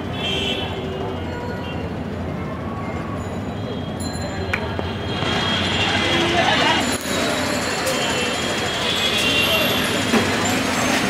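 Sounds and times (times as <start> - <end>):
traffic: 0.0 - 11.0
voices of passers-by: 0.0 - 11.0.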